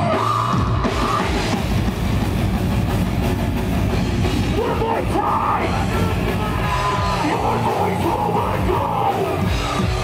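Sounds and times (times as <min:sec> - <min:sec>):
heavy metal band playing: 0:00.0 - 0:10.0
vocalist screaming: 0:04.5 - 0:09.5.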